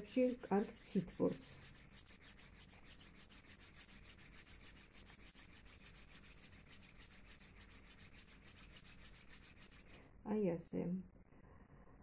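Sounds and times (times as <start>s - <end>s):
palms rubbing together: 0.0s - 10.0s.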